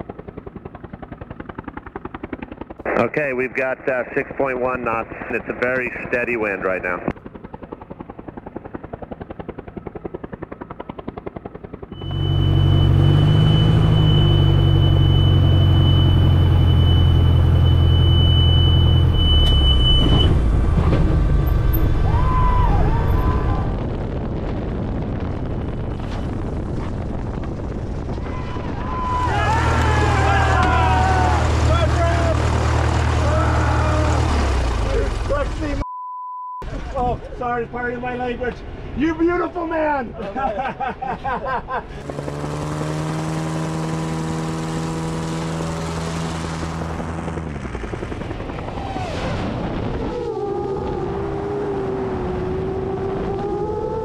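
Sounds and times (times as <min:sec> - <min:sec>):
light aircraft engine and propeller: 0:00.0 - 0:24.3, 0:24.9 - 0:35.8, 0:36.7 - 0:54.0
voices: 0:02.9 - 0:07.1
high-pitched whistle: 0:12.0 - 0:20.3.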